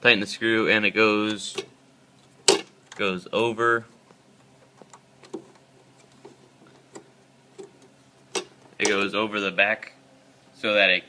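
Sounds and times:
fingers clicking and tapping metal: 4.6s - 9.1s.

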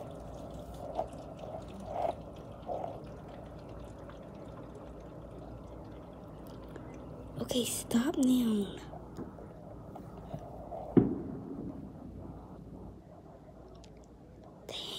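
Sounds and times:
steady low hum: 0.0s - 14.9s.

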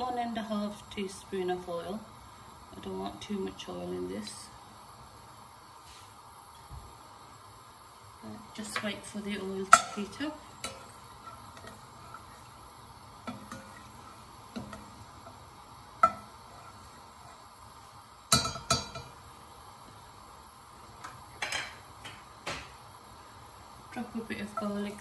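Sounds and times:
spatula scraping metal pot: 9.6s - 12.6s.

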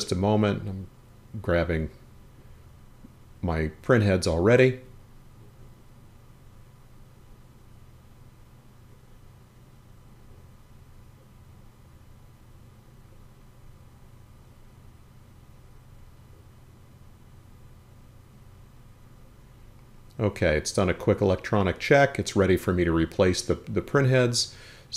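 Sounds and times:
faint low hum with hiss: 0.0s - 24.9s.

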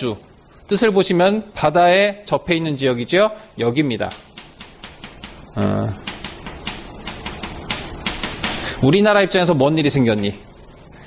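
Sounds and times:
chalk tapping on blackboard: 4.0s - 8.8s.

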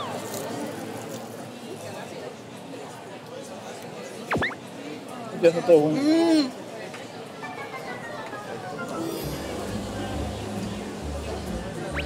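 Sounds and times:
murmur of diners' voices: 0.0s - 12.0s
falling whistle sound effect: 4.3s - 4.6s.

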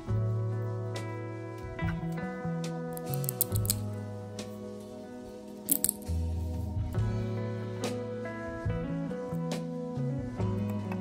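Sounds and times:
small plastic pieces snapping off: 3.0s - 3.9s, 5.7s - 6.1s.

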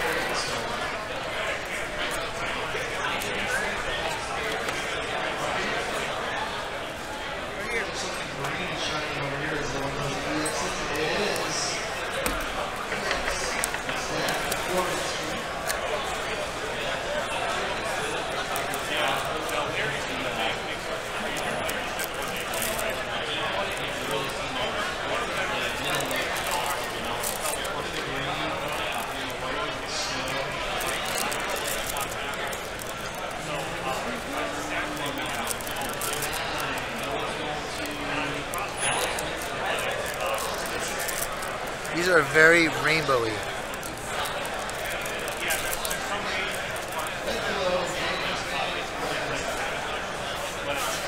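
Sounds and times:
babble of many voices: 0.0s - 51.0s
foil wrappers crinkling: 21.2s - 24.4s, 25.1s - 47.6s.

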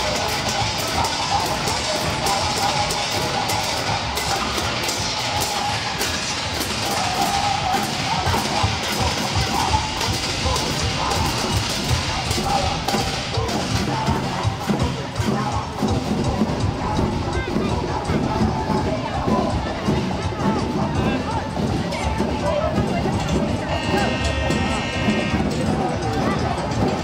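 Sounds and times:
music with drums and percussion: 0.0s - 27.0s.

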